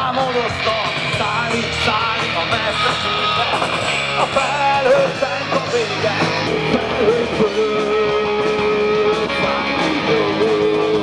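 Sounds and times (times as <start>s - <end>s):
bass guitar: 0.0s - 11.0s
drums: 0.0s - 11.0s
electric guitars: 0.0s - 11.0s
man singing: 0.0s - 11.0s.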